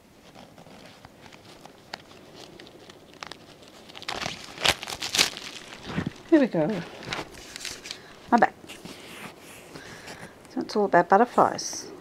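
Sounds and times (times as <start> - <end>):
wrapping crinkling and tearing: 0.2 - 10.3.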